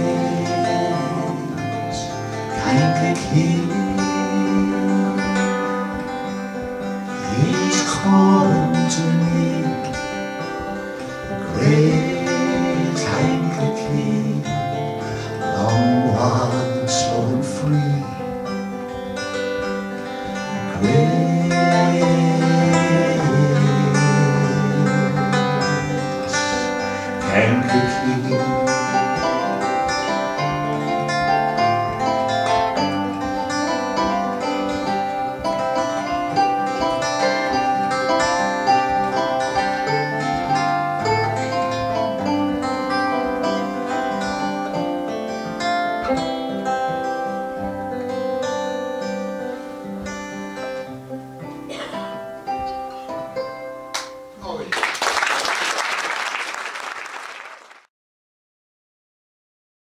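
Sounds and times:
folk band on acoustic guitars: 0.0 - 57.8.

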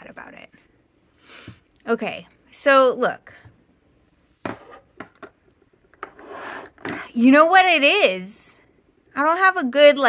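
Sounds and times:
pens knocking on desk: 4.4 - 7.0.

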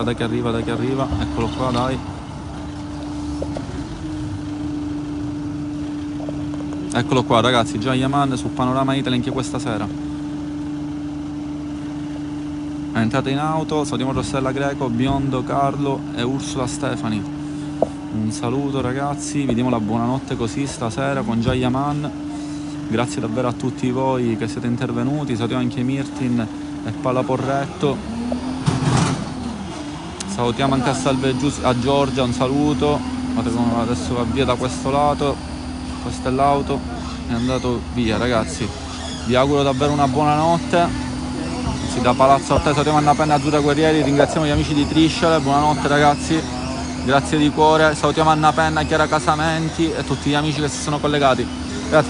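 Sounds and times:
car engine idling: 0.0 - 52.0.

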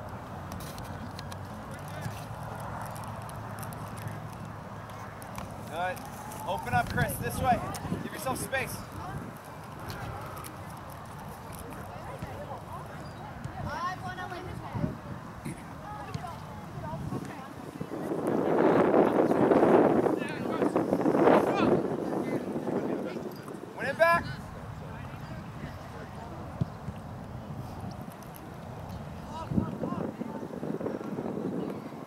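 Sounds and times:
wind rumble on microphone: 0.0 - 32.0.

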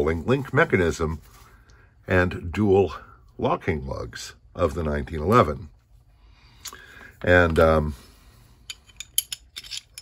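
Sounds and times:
metal parts clicking and clinking: 8.6 - 10.0.

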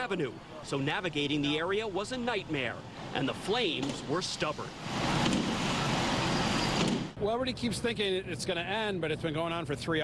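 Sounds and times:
fire truck engine and pump running: 0.0 - 10.0.

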